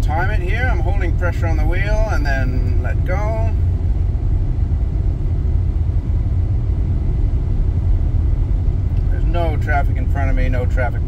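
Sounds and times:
road rumble inside car cabin: 0:00.0 - 0:11.0.

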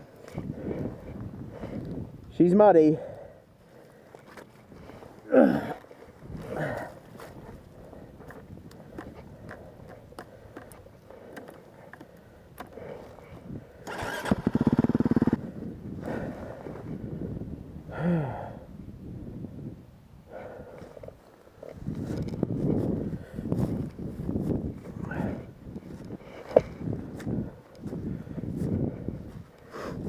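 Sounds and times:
grunts of effort: 0:05.2 - 0:07.3, 0:17.9 - 0:18.7, 0:25.0 - 0:25.5
dirt bike engine starting: 0:13.8 - 0:15.6.

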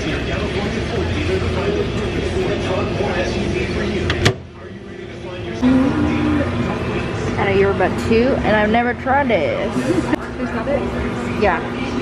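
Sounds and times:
microwave oven humming: 0:00.0 - 0:12.0.

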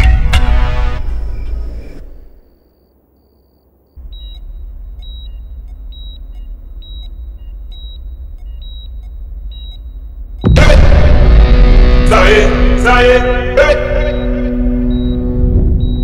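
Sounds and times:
dramatic film music: 0:00.0 - 0:02.3, 0:04.0 - 0:16.0
patient monitor beeping: 0:02.4 - 0:10.6, 0:13.5 - 0:16.0
low rumbling drone: 0:04.0 - 0:16.0.

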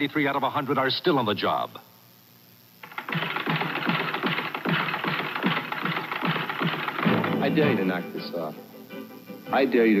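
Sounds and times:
fast mechanical clatter: 0:02.8 - 0:07.7
music: 0:03.1 - 0:10.0.

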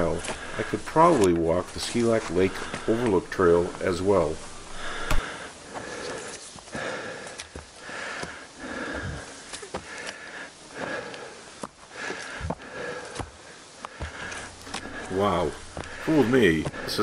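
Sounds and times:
person breathing hard: 0:00.0 - 0:01.2, 0:01.8 - 0:03.1, 0:03.8 - 0:17.0
footsteps on ground: 0:00.0 - 0:05.2, 0:13.9 - 0:17.0.

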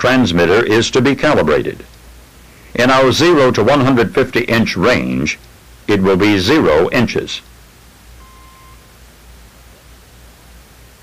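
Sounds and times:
steady hiss with low hum: 0:00.0 - 0:11.0
faint short beep: 0:08.2 - 0:08.9.

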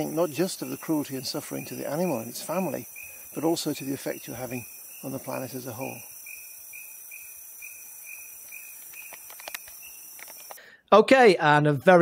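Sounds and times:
insects droning and chirping: 0:00.0 - 0:10.6
faint clicks: 0:08.4 - 0:10.6.

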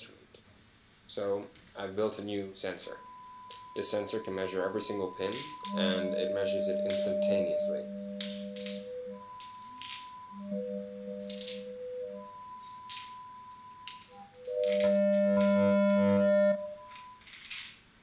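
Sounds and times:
synthesizer tones: 0:02.9 - 0:17.3
synthesizer chord: 0:03.2 - 0:17.1.

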